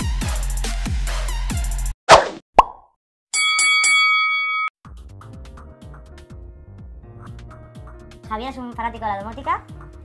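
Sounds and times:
soft background music: 4.9 - 10.0.

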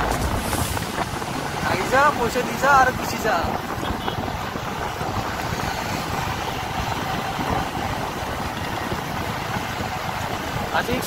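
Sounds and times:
vehicle engine and road noise: 0.0 - 11.0
wind rumble on microphone: 0.0 - 11.0.

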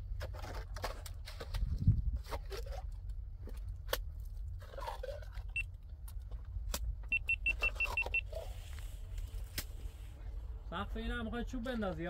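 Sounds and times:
sharp clicks and scrapes: 0.0 - 9.9.

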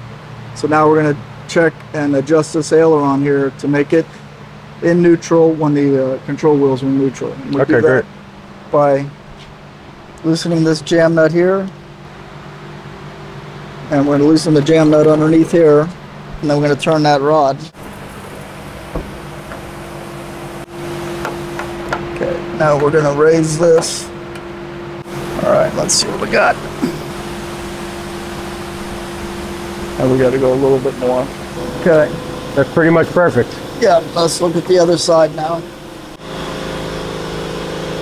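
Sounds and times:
steady mechanical hum: 0.0 - 38.0
higher steady tone: 17.7 - 38.0.

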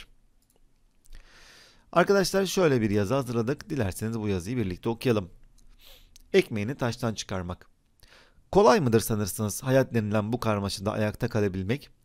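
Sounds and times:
soft intake of breath: 1.1 - 1.9, 5.7 - 6.2, 8.0 - 8.5
man speaking: 1.9 - 5.4, 6.3 - 7.7, 8.5 - 12.0.

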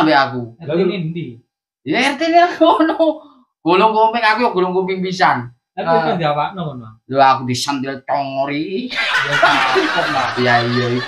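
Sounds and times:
man talking: 0.0 - 11.0
men laughing: 8.9 - 11.0.

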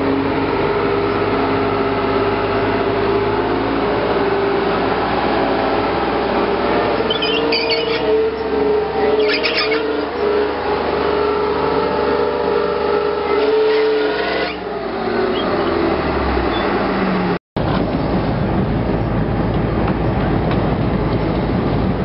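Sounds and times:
tank engine whine: 0.0 - 22.0
low rumbling noise: 14.6 - 22.0.

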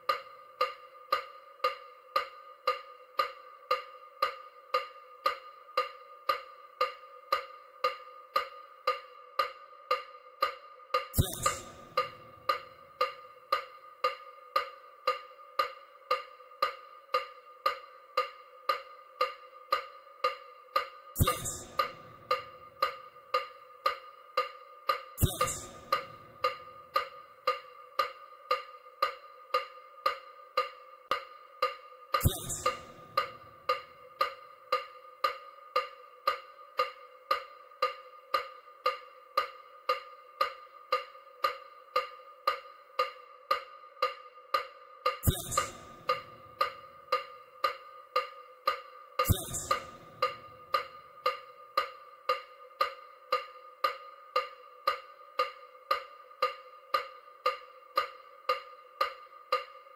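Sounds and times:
short electronic ticks: 11.2 - 13.7, 20.8 - 24.0, 24.9 - 28.2, 32.1 - 37.5, 44.6 - 59.8.

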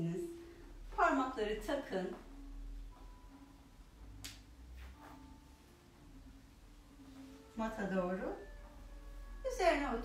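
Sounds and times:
soft rustles on a mat: 4.6 - 9.5.

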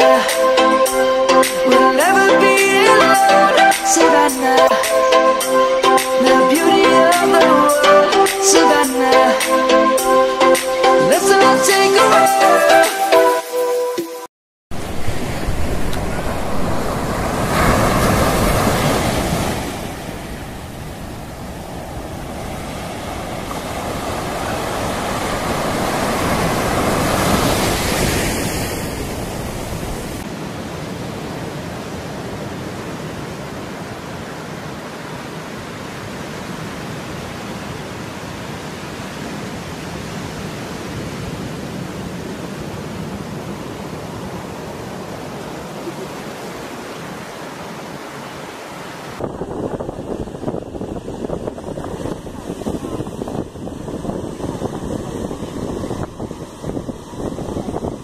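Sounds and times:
wind on the microphone: 14.7 - 30.2, 49.1 - 58.0
surf washing up a beach: 14.7 - 58.0.

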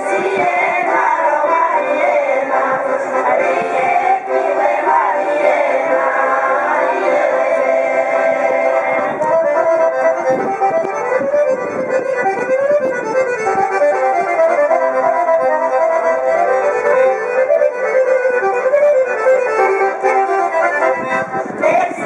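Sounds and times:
accordion folk melody: 0.0 - 22.0.

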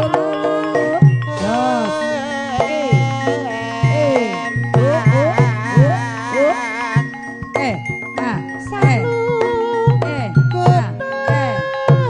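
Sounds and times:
high buzzy wavering melody: 0.0 - 12.0.

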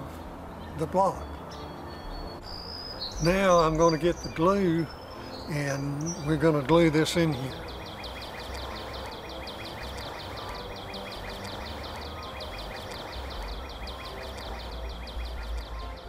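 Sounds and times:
insect chirping: 7.4 - 15.8.

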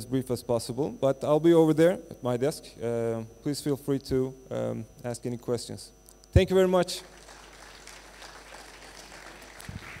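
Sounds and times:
audience applause: 7.1 - 10.0.

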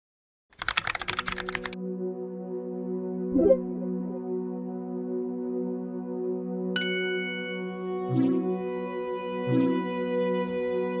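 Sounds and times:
soft ambient music: 1.3 - 11.0.

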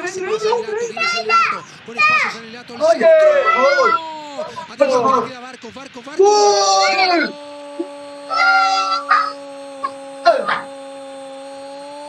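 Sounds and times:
man yelling: 0.2 - 5.3, 6.2 - 10.8
steady humming tone: 6.2 - 12.0.

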